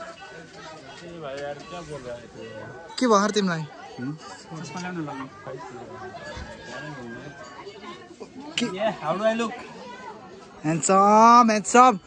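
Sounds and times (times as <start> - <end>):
people chatting in background: 0.0 - 12.0.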